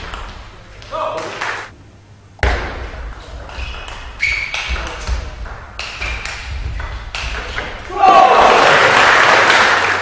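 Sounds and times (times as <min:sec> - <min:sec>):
table tennis ball hits: 0:02.4 - 0:08.0.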